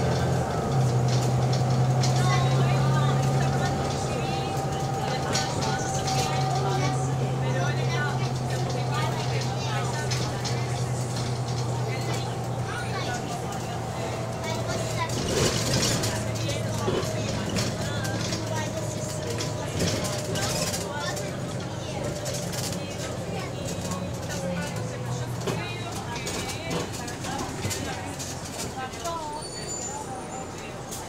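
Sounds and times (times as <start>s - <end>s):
bus engine drone: 0.0s - 31.0s
people talking: 0.0s - 31.0s.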